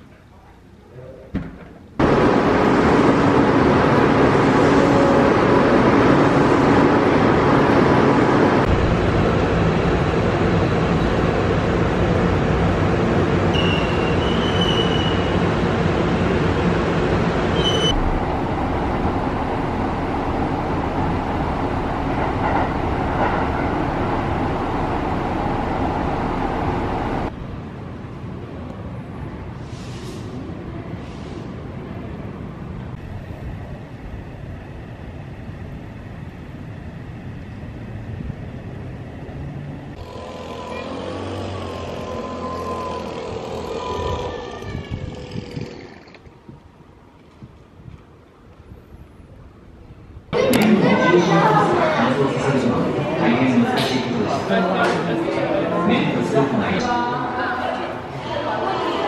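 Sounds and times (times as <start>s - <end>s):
moving vehicle rumbling: 2.0s - 48.0s
short high squeals: 13.5s - 15.4s, 17.6s - 18.0s, 40.3s - 45.9s.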